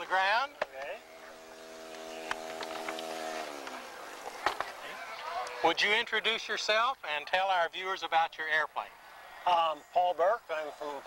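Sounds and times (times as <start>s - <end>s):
model airplane engine buzzing: 0.0s - 5.5s.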